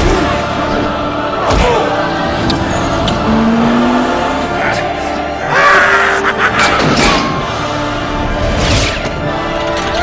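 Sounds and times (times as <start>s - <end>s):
trailer music: 0.0s - 10.0s
car engine revving: 2.2s - 5.4s.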